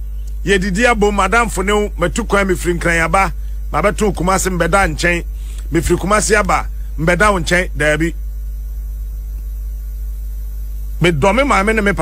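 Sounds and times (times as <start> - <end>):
faint high steady tones: 0.0 - 12.0
low electrical hum: 0.0 - 12.0.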